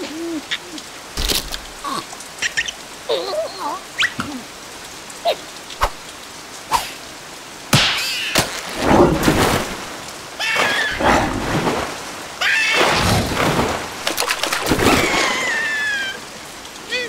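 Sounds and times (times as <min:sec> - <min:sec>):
rain pattering: 0:00.0 - 0:17.0.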